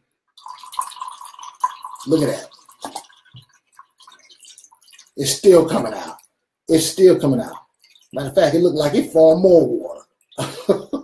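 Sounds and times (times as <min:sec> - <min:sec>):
water dripping into a cup: 0:00.3 - 0:11.0.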